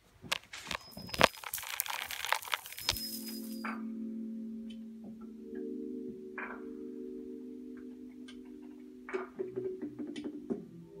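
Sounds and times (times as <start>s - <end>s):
bead curtain clacking: 0.3s - 3.7s
low drone of held tones: 3.6s - 10.1s.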